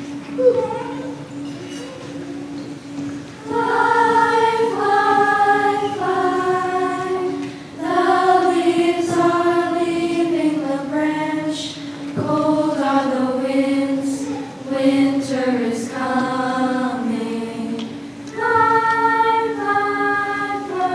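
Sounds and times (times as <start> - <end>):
choir singing: 3.4 - 20.9.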